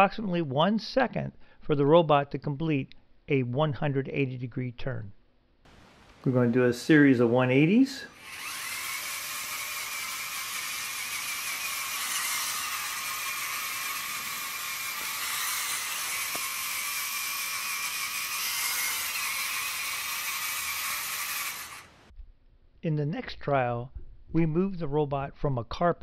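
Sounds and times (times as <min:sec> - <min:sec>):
robot motors and gears whirring: 0:08.1 - 0:22.1.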